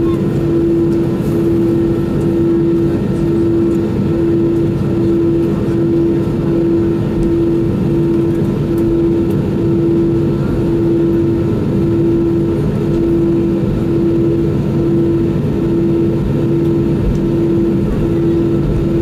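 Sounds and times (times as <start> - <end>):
aircraft cabin low rumble: 0.0 - 19.0
pulsing humming tone: 0.0 - 19.0.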